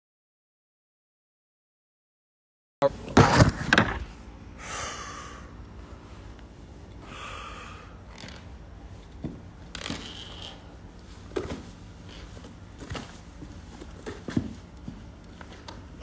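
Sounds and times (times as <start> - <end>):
low room hum: 2.8 - 16.0.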